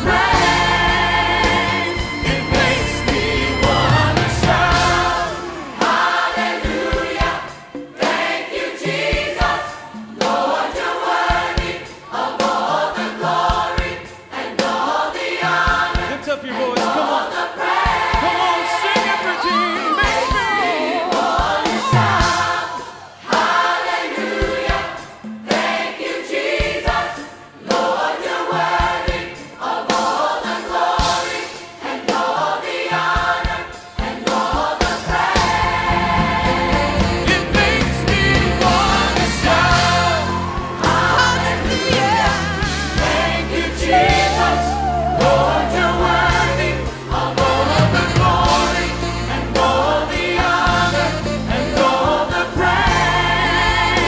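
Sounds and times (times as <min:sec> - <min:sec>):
choir singing gospel song: 0:00.0 - 0:54.0
instrumental backing with beat: 0:00.0 - 0:54.0.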